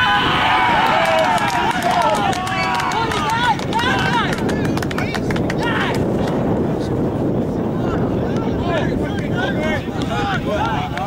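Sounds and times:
voices shouting and cheering: 0.0s - 11.0s.

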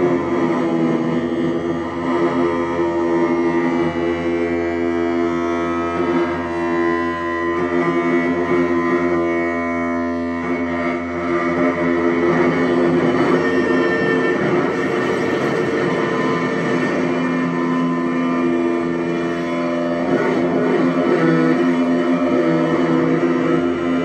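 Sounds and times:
electronic drone of held tones: 0.0s - 24.0s
grainy noise texture: 12.4s - 22.2s.

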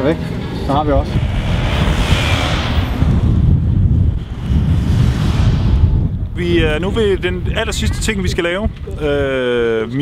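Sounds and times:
wind buffeting microphone: 0.2s - 10.0s
car driving past: 0.6s - 6.2s.

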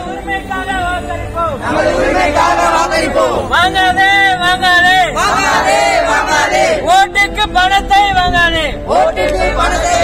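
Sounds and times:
men chanting in unison: 1.6s - 3.5s, 5.2s - 6.9s, 8.9s - 10.0s.

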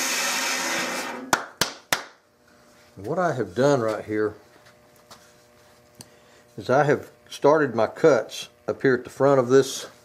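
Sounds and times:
bandsaw running: 0.0s - 1.5s.

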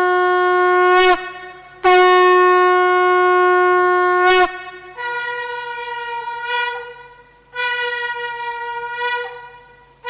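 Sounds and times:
horn long blasts: 0.0s - 10.0s.

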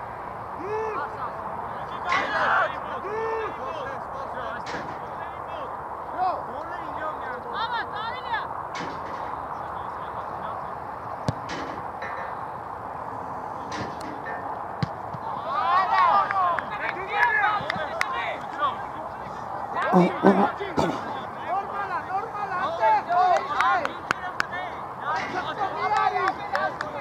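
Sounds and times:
outdoor background noise: 0.0s - 27.0s
players shouting: 2.1s - 3.9s, 15.1s - 27.0s.

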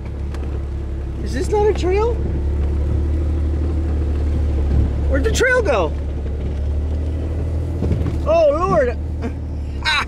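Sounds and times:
vehicle engine running at low speed: 0.0s - 10.0s.

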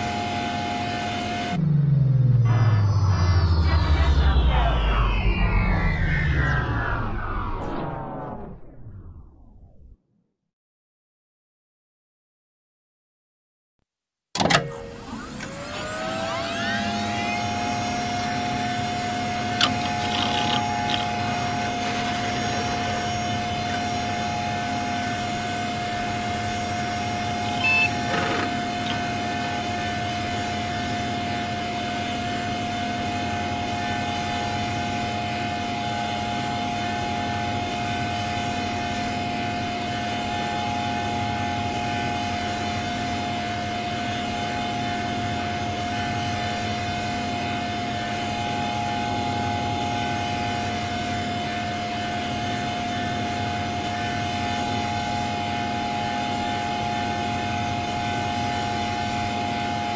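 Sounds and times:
droning synth chord: 0.0s - 8.7s
higher blips: 1.6s - 9.9s.

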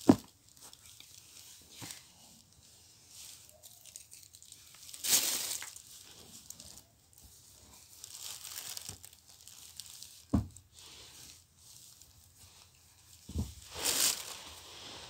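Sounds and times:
plastic bag rustling: 0.0s - 15.0s.

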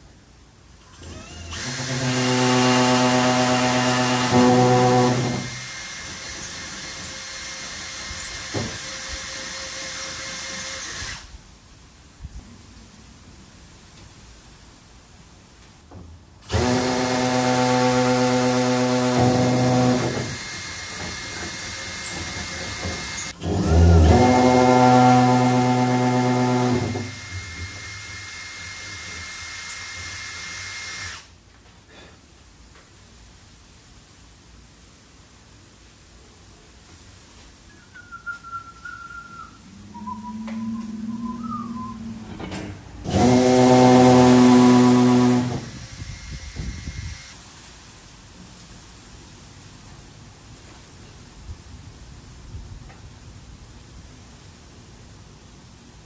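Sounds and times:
cordless drill whining: 0.8s - 11.3s, 16.4s - 31.3s, 43.0s - 47.4s.

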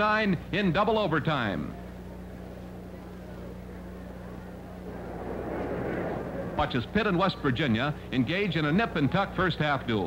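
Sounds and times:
electrical hum and hiss: 0.0s - 10.0s
faint wash of noise: 4.8s - 8.1s.

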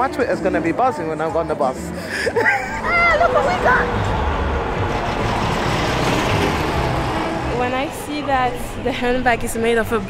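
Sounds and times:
street traffic rush: 1.4s - 10.0s
vehicle passing rumble: 2.8s - 10.0s.

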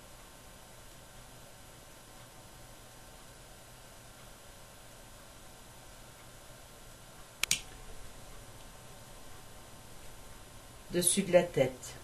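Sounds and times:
faint room noise: 0.0s - 12.0s
sharp clicks: 7.4s - 7.8s.

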